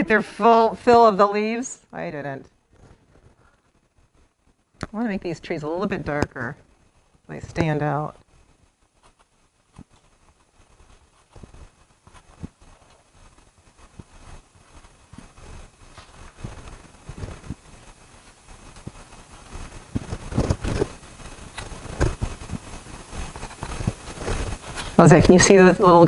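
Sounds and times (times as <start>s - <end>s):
pastel tapping and scraping paper: 7.5s - 25.0s.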